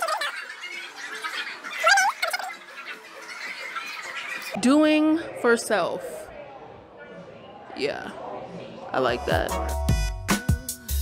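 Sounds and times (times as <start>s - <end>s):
low murmur of voices: 2.7s - 9.5s.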